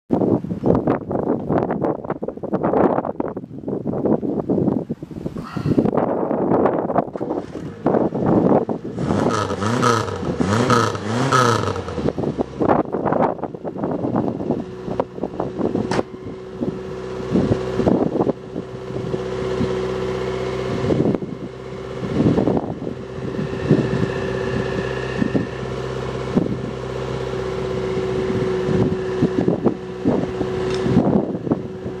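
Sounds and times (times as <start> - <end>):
wind buffeting microphone: 0.1 - 32.0.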